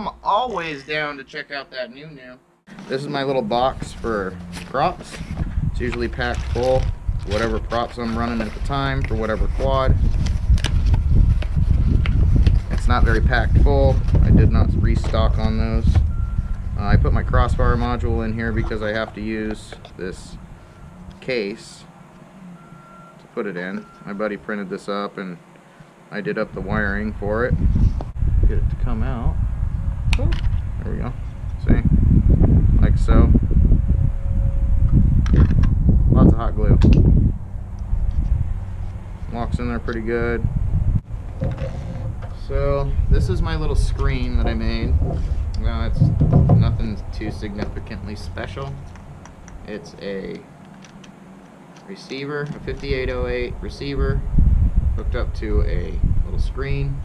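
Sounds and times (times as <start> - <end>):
faint steady whine: 0.0 - 35.0
wind buffeting microphone: 3.2 - 21.8, 26.4 - 51.4, 52.4 - 57.0.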